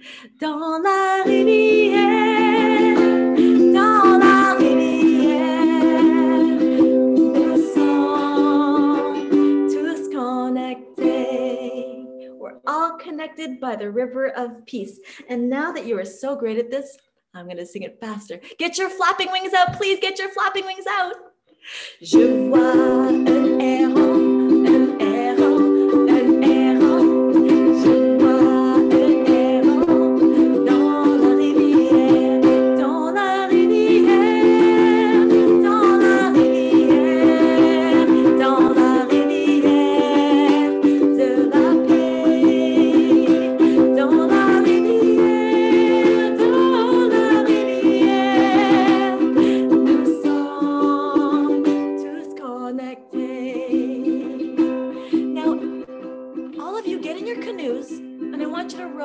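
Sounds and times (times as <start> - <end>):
ukulele strumming: 0.0 - 12.9, 22.0 - 59.0
woman singing: 0.0 - 16.7, 18.2 - 55.9, 56.5 - 59.0.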